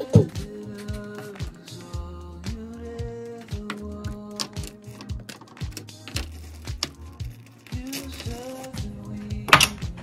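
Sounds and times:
deep bass line: 0:00.0 - 0:10.0.

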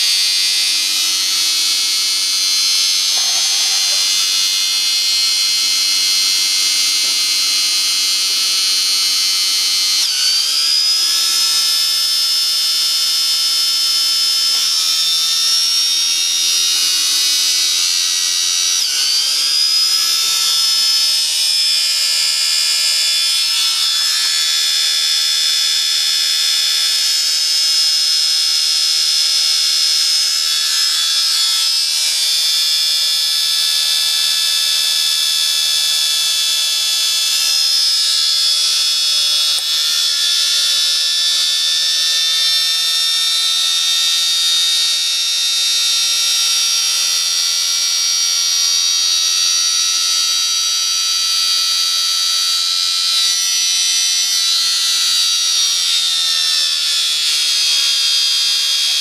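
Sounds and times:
small electric motor whining: 0:00.0 - 0:59.0.

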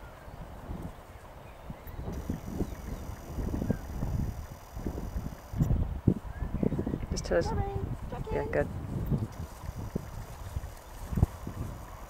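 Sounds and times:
gusty wind on microphone: 0:00.0 - 0:12.0
faint bird chirps: 0:01.5 - 0:05.6.

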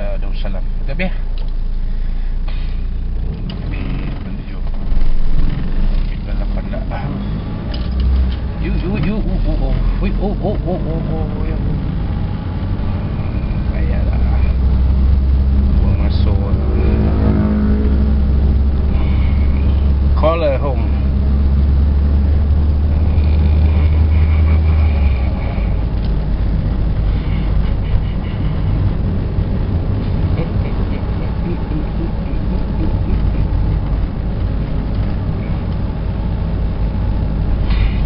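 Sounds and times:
car engine and road noise: 0:00.0 - 0:38.0.

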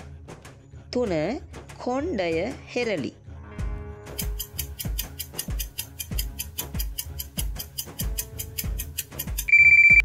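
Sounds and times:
countdown music with ticking: 0:04.1 - 0:10.0
loud electronic beep: 0:09.5 - 0:10.0.

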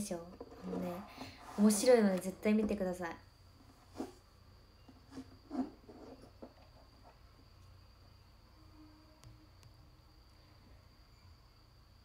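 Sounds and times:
faint high-pitched tone: 0:07.6 - 0:11.6.

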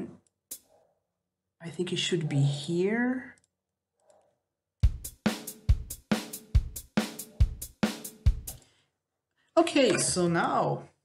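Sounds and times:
bass drum: 0:04.8 - 0:08.6.

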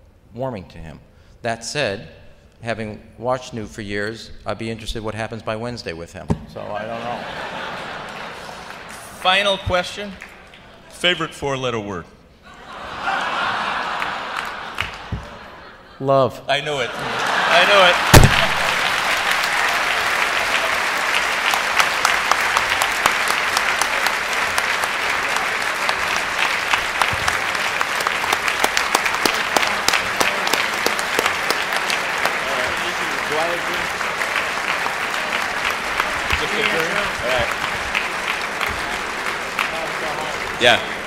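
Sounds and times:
audience applauding: 0:06.9 - 0:10.9, 0:13.0 - 0:15.6, 0:16.9 - 0:41.0.

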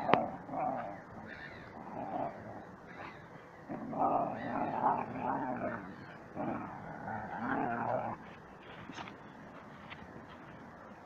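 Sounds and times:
dogs growling: 0:00.0 - 0:08.3.

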